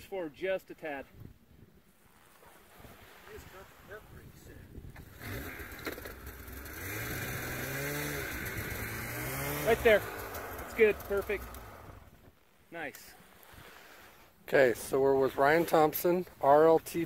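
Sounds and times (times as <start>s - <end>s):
snowmobile engine running: 5.1s - 12.1s.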